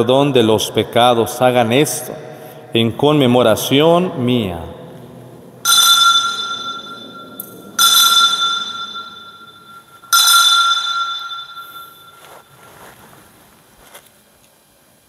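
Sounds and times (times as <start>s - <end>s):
altar bell ringing: 5.6s - 12.6s.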